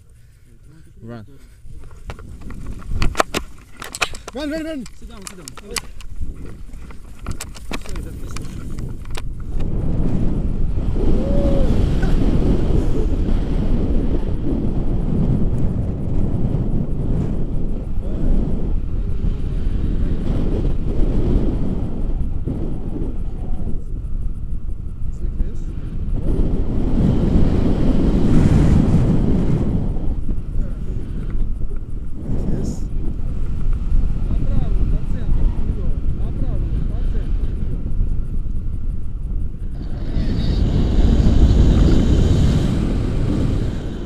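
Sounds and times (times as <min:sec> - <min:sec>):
wind rushing over microphone: 0:00.0 - 0:44.0.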